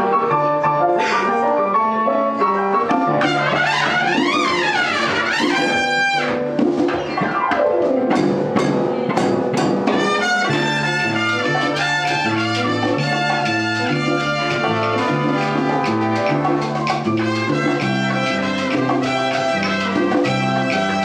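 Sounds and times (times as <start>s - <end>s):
bass: 0.0s - 21.0s
latin percussion: 0.0s - 21.0s
horn section playing: 1.0s - 6.7s, 9.9s - 21.0s.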